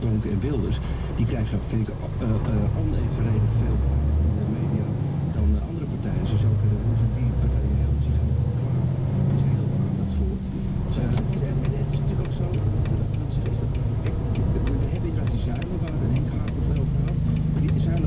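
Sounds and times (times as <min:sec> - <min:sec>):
truck engine drone in cab: 0:00.0 - 0:18.0
light ticks: 0:10.8 - 0:18.0.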